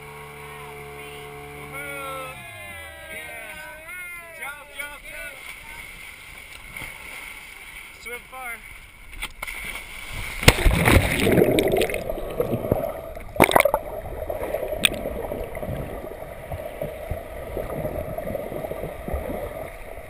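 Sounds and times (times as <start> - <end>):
water splash and churning: 4.8 - 20.0
underwater gurgle and rush: 8.6 - 20.0.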